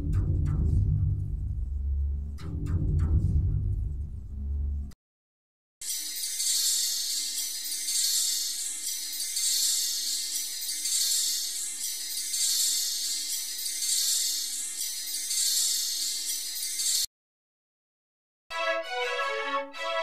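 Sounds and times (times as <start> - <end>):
high hissy synthesizer jingling: 5.8 - 17.1.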